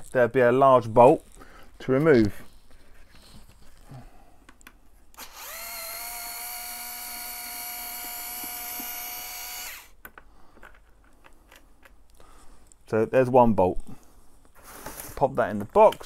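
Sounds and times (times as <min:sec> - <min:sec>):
electric screwdriver whine: 0:05.2 - 0:10.0.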